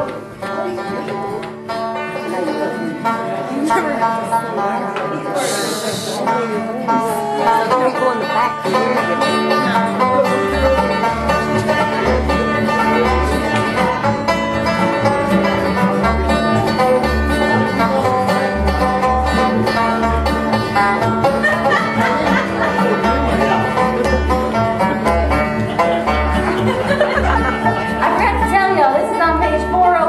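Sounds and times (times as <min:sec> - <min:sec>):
banjo picking: 0:00.0 - 0:30.0
strummed acoustic guitar: 0:00.0 - 0:30.0
upright bass line: 0:06.0 - 0:30.0.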